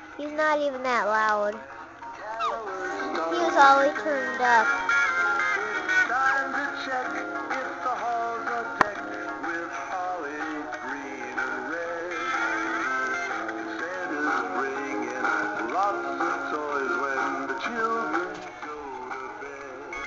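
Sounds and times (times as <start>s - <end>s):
toy playing christmas song: 2.2s - 8.4s.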